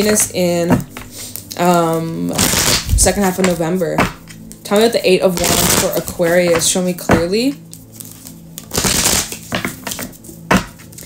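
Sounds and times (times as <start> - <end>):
cards being shuffled: 0.0 - 4.6, 5.4 - 11.0.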